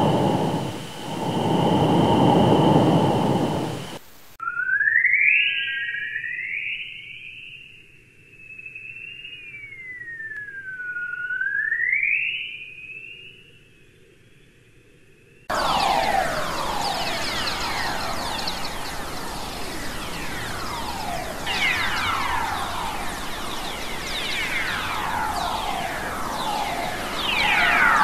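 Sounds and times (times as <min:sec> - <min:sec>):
hiss with falling whistles: 0:00.0 - 0:06.8, 0:07.4 - 0:13.4, 0:15.4 - 0:28.0
gliding whistling tone: 0:00.0 - 0:07.3, 0:08.4 - 0:13.2, 0:15.5 - 0:28.0.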